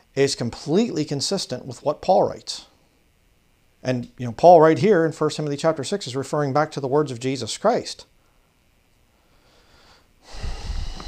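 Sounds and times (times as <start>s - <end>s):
faint breath: 8.2s - 11.0s.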